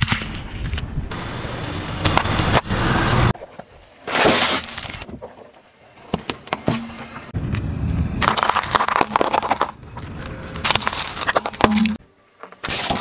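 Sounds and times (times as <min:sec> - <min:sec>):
car tyre crushing small objects: 0:08.2 - 0:13.0.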